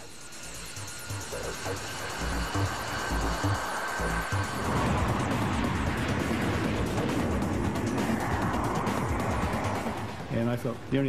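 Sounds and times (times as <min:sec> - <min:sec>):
low music beat: 0:00.0 - 0:10.3
high turbine whine: 0:00.0 - 0:11.0
jet engines roaring: 0:00.0 - 0:11.0.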